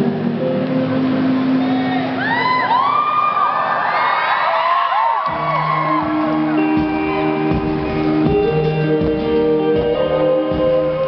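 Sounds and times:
audience screaming and cheering: 1.1 - 10.8.

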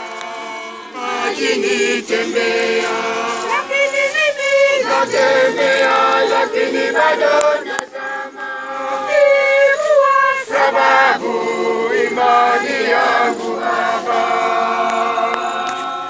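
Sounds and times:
crowd singing a hymn: 0.0 - 16.0.

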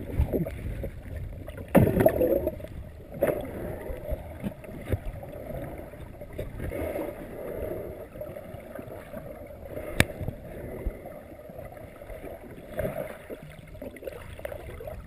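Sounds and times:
muffled underwater churning: 0.0 - 15.0.

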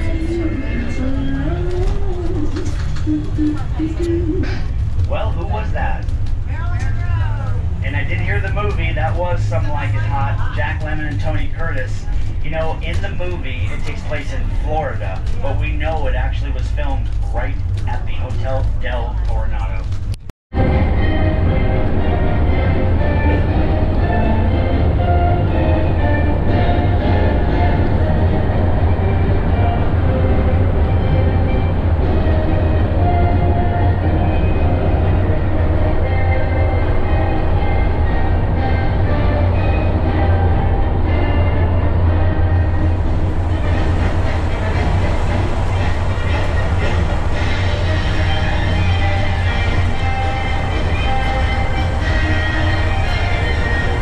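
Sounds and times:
music playing: 0.0 - 19.8, 20.6 - 54.0
bus engine drone and road noise: 0.0 - 54.0.

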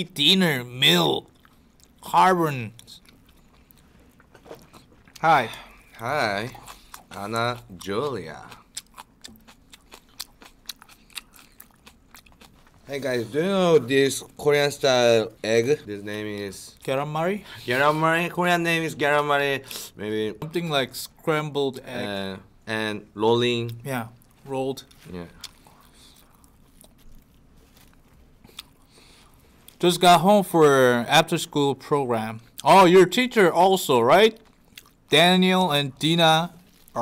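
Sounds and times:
person chewing food: 1.3 - 2.0, 2.7 - 12.9, 23.7 - 29.8, 34.4 - 35.1.

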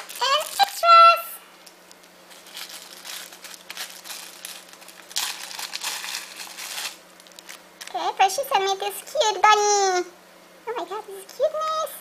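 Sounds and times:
plastic bag crinkling: 0.0 - 0.8, 1.8 - 8.1.

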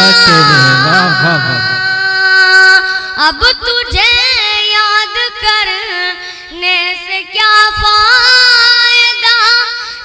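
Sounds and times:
boy singing wavering notes: 0.0 - 9.8.

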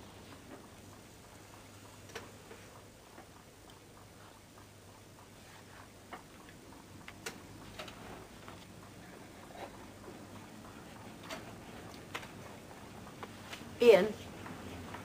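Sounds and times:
clock ticking: 0.0 - 13.3.

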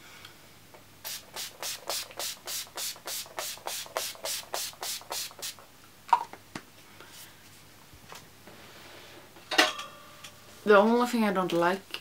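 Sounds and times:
spray bottle spritzing: 1.0 - 5.6.

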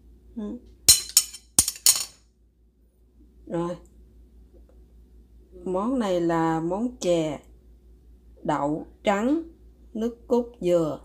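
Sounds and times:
metal spoon clinking on stone: 0.9 - 2.1.

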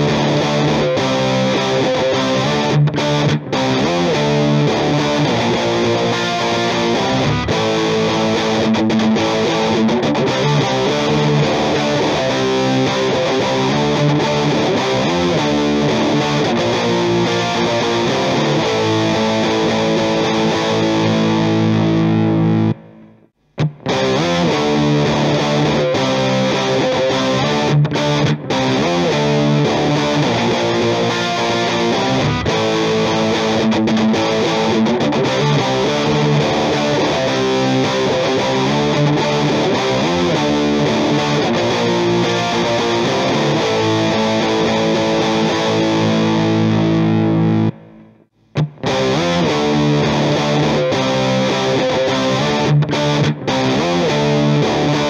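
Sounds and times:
distorted electric guitar: 0.0 - 55.0.

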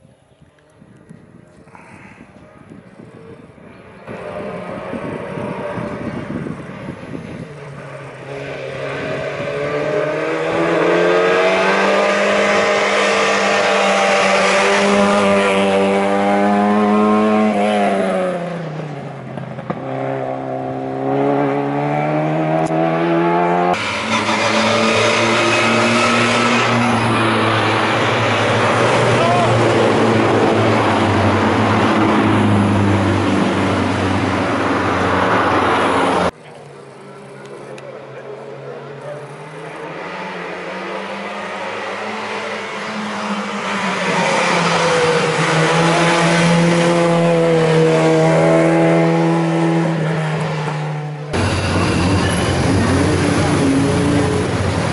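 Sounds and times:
race car engine revving: 4.0 - 36.3, 38.0 - 54.9.

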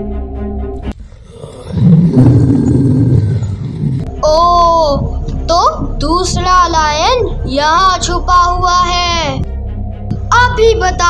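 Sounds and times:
lion roaring: 1.0 - 4.2.

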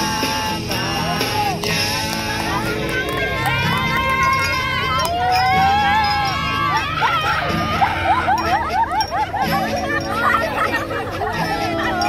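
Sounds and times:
women cheering and squealing: 2.6 - 12.0.

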